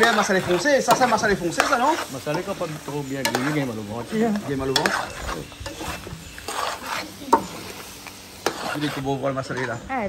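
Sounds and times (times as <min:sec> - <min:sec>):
spoon scraping a pot: 0:00.0 - 0:09.9
tripe sizzling in a pot: 0:00.0 - 0:10.0.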